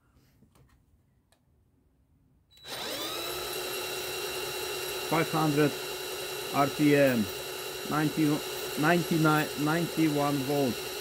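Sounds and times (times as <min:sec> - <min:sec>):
cordless drill running: 0:02.5 - 0:11.0.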